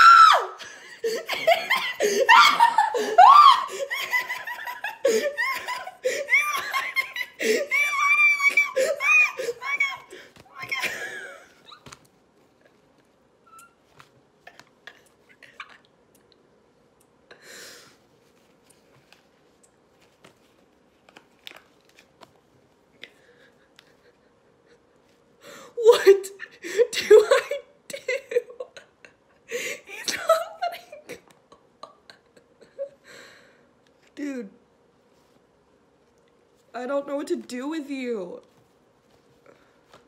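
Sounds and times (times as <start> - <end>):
woman gasping: 0.6 - 1.3, 1.9 - 4.0, 6.0 - 6.4, 7.4 - 7.9
woman laughing: 0.6 - 11.9, 25.8 - 33.0.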